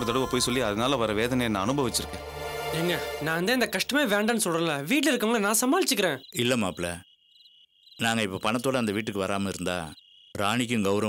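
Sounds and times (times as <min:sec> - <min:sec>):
cricket trilling: 0:03.6 - 0:11.0.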